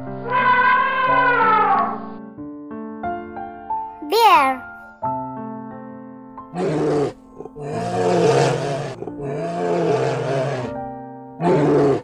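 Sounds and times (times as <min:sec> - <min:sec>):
bear roaring: 0:06.6 - 0:10.8, 0:11.4 - 0:12.0.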